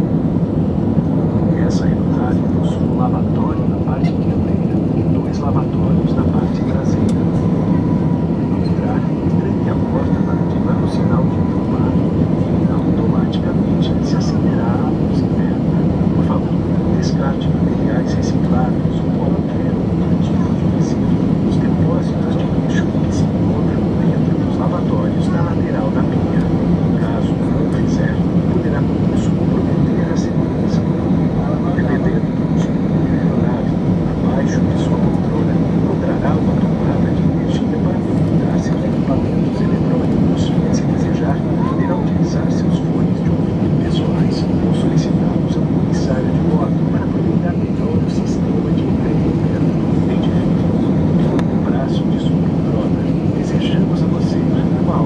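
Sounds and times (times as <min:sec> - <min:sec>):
faint passenger voices: 0:00.0 - 0:55.0
jet airliner cabin roar: 0:00.0 - 0:55.0.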